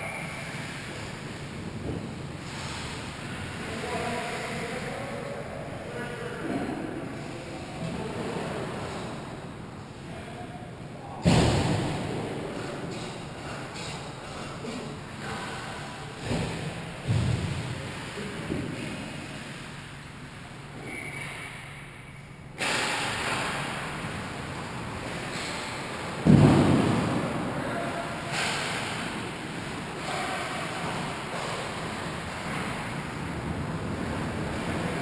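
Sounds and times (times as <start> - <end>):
hollow rink background: 0.0 - 35.0.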